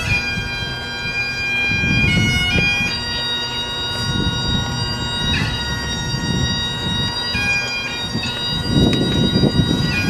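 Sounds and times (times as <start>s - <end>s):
bagpipes playing: 0.0s - 10.0s.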